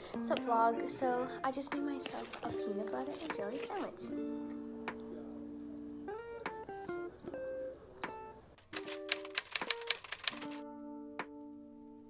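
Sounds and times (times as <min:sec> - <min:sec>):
plucked guitar background music: 0:00.0 - 0:12.0
typewriter key clacks: 0:08.6 - 0:10.6.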